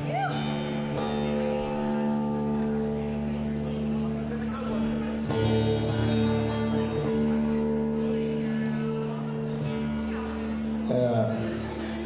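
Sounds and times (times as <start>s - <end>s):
guitar strings plucked: 0.0s - 11.9s.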